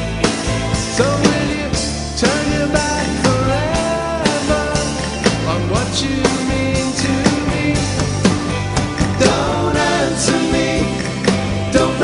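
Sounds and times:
drums steady beat: 0:00.0 - 0:12.0
live rock band playing: 0:00.0 - 0:12.0
man singing: 0:00.9 - 0:08.2.

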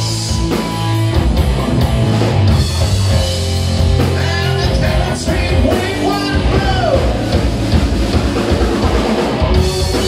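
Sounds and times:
distorted electric guitars: 0:00.0 - 0:10.0
drum kit: 0:00.0 - 0:10.0.

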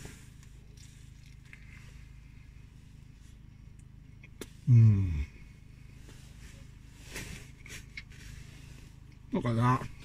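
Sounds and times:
road traffic rumble: 0:00.0 - 0:10.0
man chewing: 0:00.2 - 0:02.2, 0:07.5 - 0:09.3
soft rustles and clicks: 0:05.9 - 0:10.0.

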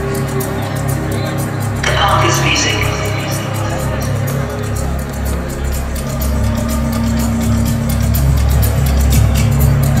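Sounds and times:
heavy pulsing bass: 0:00.0 - 0:10.0
techno over club sound system: 0:01.7 - 0:07.1.

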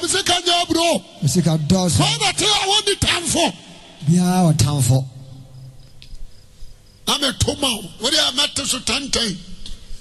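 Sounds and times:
preacher's voice: 0:00.0 - 0:05.4, 0:07.0 - 0:09.5.

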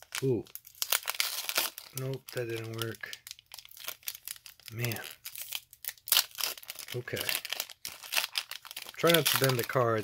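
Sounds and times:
foil wrapper crinkling and tearing: 0:00.0 - 0:10.0.

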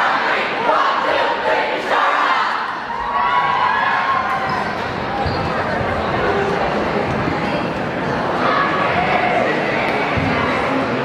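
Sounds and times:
crowd cheering and calling out: 0:00.0 - 0:11.0.

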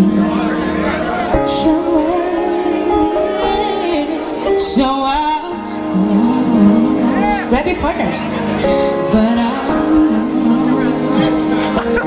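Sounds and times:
woman singing a slow ballad: 0:00.0 - 0:00.8, 0:01.4 - 0:11.8
backing track: 0:00.0 - 0:12.0.

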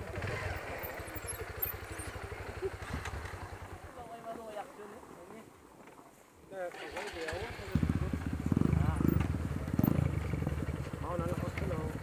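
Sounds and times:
dirt bike engine revving: 0:00.0 - 0:03.6, 0:06.8 - 0:12.0.

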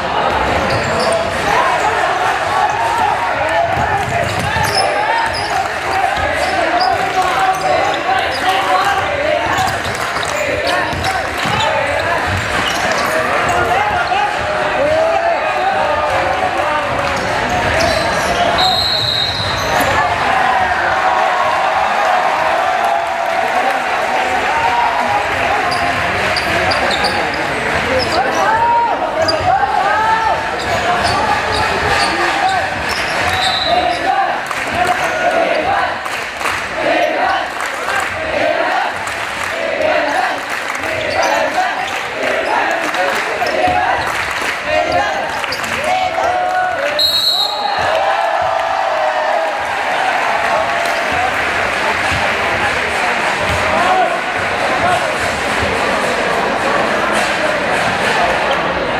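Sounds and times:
many voices shouting: 0:00.0 - 0:58.9.

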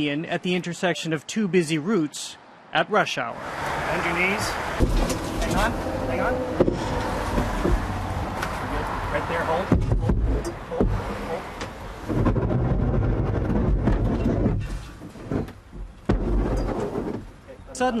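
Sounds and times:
wind rumbling on microphone: 0:09.7 - 0:15.5.

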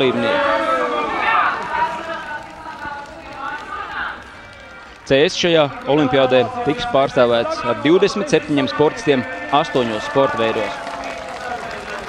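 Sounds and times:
distant voice over public address: 0:00.0 - 0:12.0.

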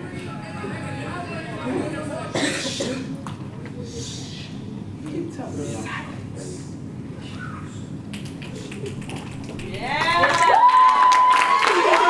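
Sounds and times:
voices in room: 0:00.0 - 0:12.0
person coughing: 0:02.4 - 0:03.1.

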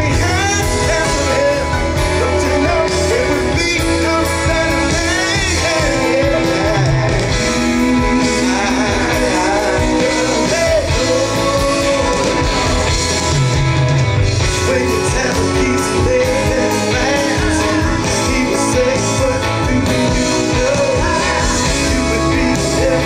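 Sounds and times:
live band playing with singing: 0:00.0 - 0:23.0.

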